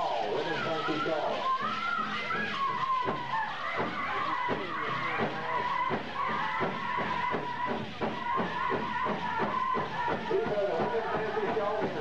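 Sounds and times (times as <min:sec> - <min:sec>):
drum beats: 0:00.0 - 0:12.0.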